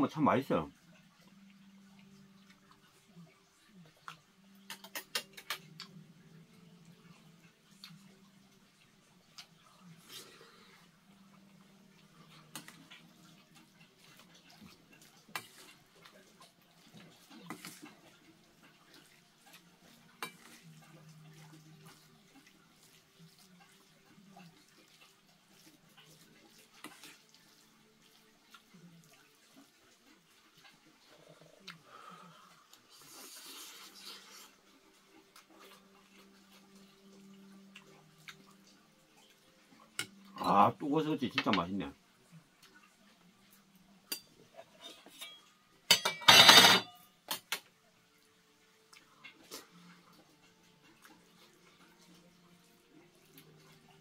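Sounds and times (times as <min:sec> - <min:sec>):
utensils clinking on metal bowl: 0:04.6 - 0:05.7, 0:20.1 - 0:20.8, 0:44.1 - 0:47.7.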